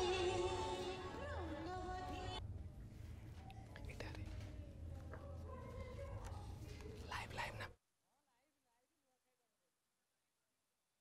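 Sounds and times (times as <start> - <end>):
faint indistinct voices: 0.0 - 8.8.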